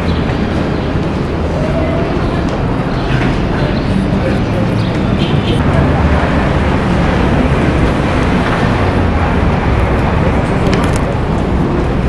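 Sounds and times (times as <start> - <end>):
loud steady rumble: 0.0 - 12.0
voices of people passing: 0.0 - 12.0.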